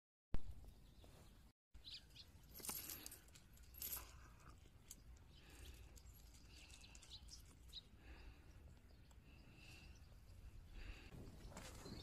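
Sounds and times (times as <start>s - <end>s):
gravel stones clinking: 2.4s - 7.9s.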